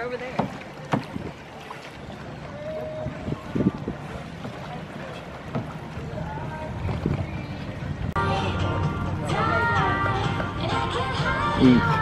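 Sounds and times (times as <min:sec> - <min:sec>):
wind rumble on microphone: 0:00.9 - 0:01.5, 0:02.4 - 0:08.2.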